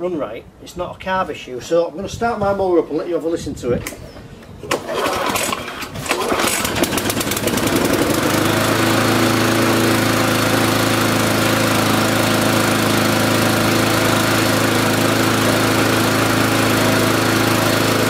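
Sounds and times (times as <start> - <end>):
lawnmower engine starting and running: 4.6 - 18.0.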